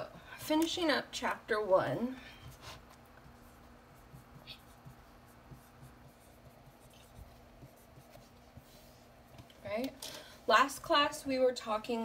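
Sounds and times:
marker writing on whiteboard: 2.4s - 9.5s.

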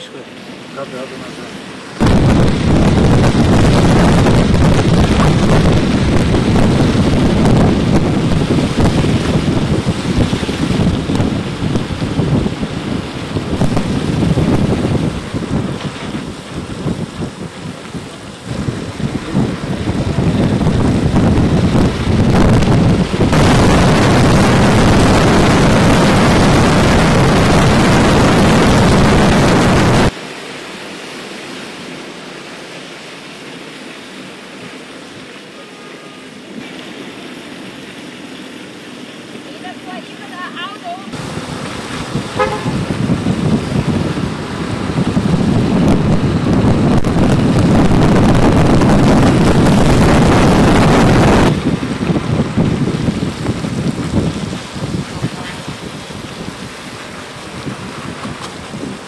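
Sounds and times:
loud road rushing noise: 0.0s - 30.2s, 39.4s - 59.0s
street sound: 34.7s - 59.0s.

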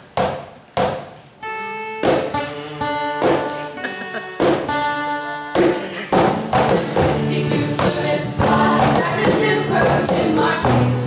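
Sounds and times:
held ensemble chord: 1.4s - 10.4s
sharp percussion knocks: 2.0s - 2.4s, 3.2s - 3.6s, 4.4s - 4.9s, 5.6s - 11.0s.

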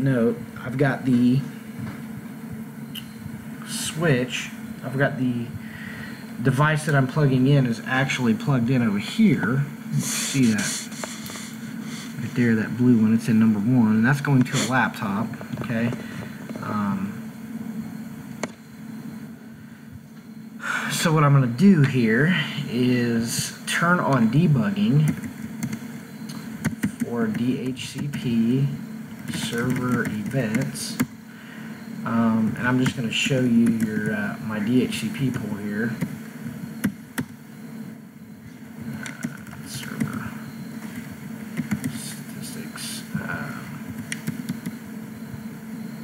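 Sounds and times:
low background hum: 0.0s - 46.0s
keyboard typing: 25.0s - 28.4s, 29.2s - 31.1s, 32.7s - 34.2s, 38.9s - 42.2s, 43.9s - 44.8s.

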